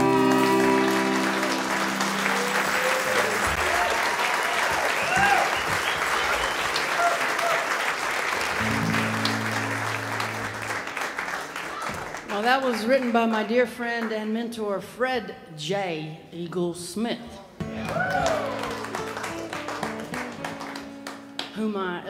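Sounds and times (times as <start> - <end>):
acoustic guitar and fiddle chord: 0.0 - 2.8, 8.6 - 10.8
audience applauding and cheering: 0.0 - 13.1, 17.6 - 21.5.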